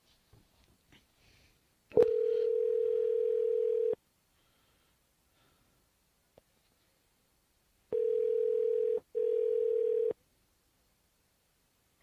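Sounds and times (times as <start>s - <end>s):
telephone ringing tone: 2.0s - 4.0s, 7.9s - 10.2s.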